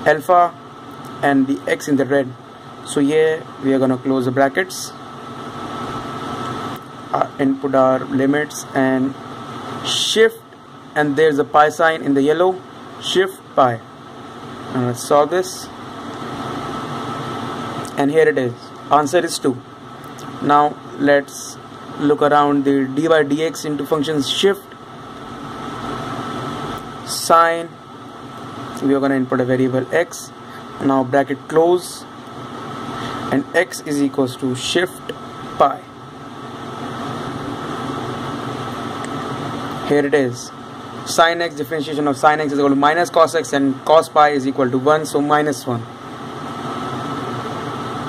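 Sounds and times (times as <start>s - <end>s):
faint steady hum: 0.0s - 48.0s
room noise hiss: 0.0s - 48.0s.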